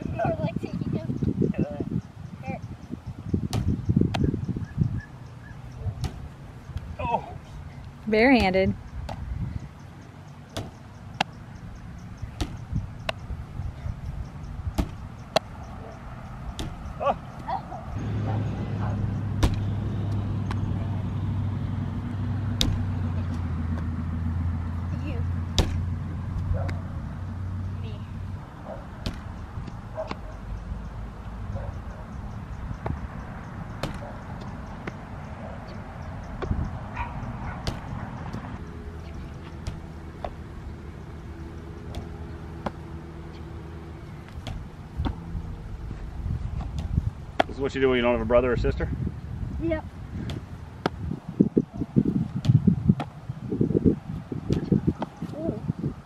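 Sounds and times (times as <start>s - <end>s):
ball hitting rebounder net: 3.4s - 4.4s, 6.0s - 6.9s, 8.2s - 9.3s, 10.5s - 11.3s, 12.3s - 13.2s, 14.7s - 15.6s, 16.5s - 16.9s, 18.6s - 20.8s, 22.5s - 23.9s, 25.5s - 26.0s, 29.0s - 29.4s, 33.8s - 34.1s, 37.5s - 38.6s, 39.4s - 40.5s, 41.9s - 42.9s, 44.3s - 45.3s, 46.6s - 47.6s, 52.4s - 53.1s, 54.5s - 55.2s
baseball smacking into gloves: 3.4s - 4.4s, 6.0s - 6.9s, 8.4s - 9.3s, 12.4s - 13.2s, 14.7s - 15.6s, 16.5s - 16.9s, 19.4s - 20.6s, 22.6s - 23.9s, 25.6s - 26.8s, 29.0s - 30.2s, 33.8s - 34.1s, 37.6s - 38.5s, 41.9s - 42.8s, 44.3s - 45.2s, 46.6s - 47.6s, 50.2s - 51.0s, 52.4s - 53.1s, 54.5s - 55.4s.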